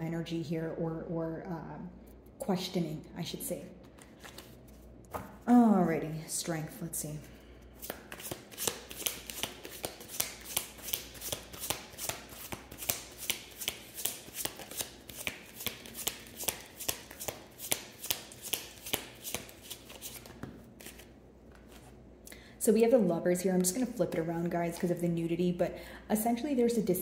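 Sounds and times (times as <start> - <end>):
cards being shuffled: 3.8 - 5.4, 7.8 - 22.0.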